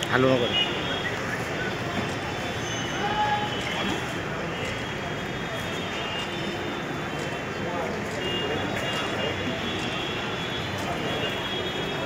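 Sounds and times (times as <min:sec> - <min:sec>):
traffic: 0:00.0 - 0:12.0.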